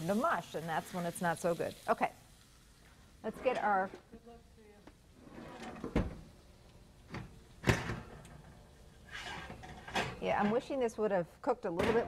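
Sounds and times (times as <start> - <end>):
oven door opening: 5.2 - 6.2, 7.1 - 10.6
kitchen drawer opening: 5.2 - 6.3, 7.1 - 8.5, 9.1 - 10.6.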